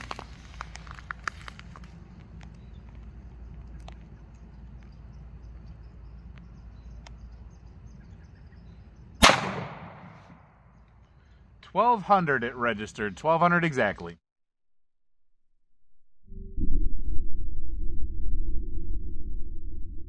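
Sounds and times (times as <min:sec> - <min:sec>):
pistol shot with echo: 0:09.2 - 0:10.6.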